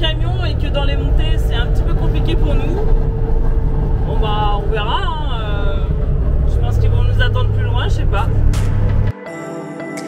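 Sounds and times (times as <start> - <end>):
truck engine drone in cab: 0.0 - 9.1.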